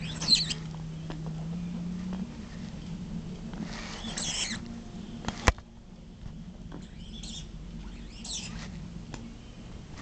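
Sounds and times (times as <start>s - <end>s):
dog whining: 0.0s - 0.7s.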